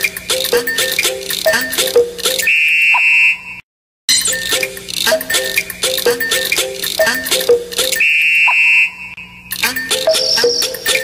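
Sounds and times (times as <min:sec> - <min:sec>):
bouncy music: 0:00.0 - 0:02.5, 0:04.1 - 0:08.0, 0:09.5 - 0:11.0
high buzzer-like electronic tone: 0:07.8 - 0:11.0.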